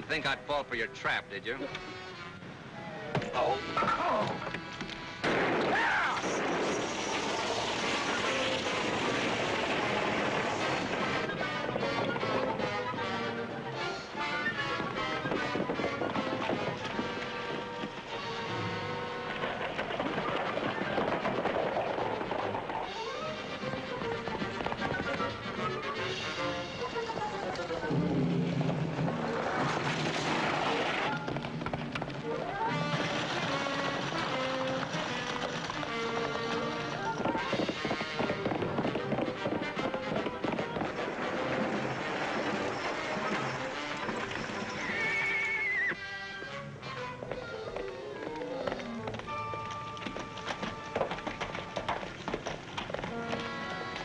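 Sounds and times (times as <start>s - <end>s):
hoofbeats of galloping horses: 5.9s - 54.0s
orchestral music: 10.2s - 19.6s
horse whinnying: 32.2s - 46.4s.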